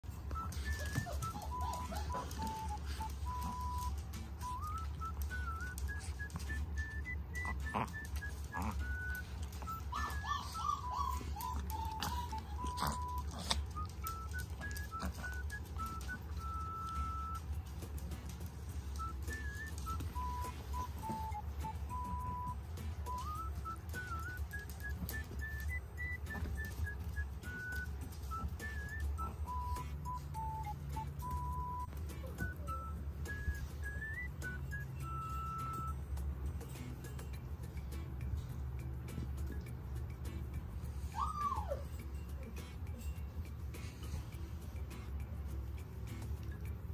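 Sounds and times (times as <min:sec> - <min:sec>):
whistle-like melody: 0:00.1 - 0:46.9.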